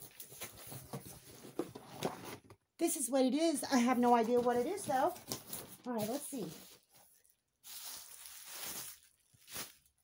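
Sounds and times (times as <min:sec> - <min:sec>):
packaging rustling: 0:04.0 - 0:10.0.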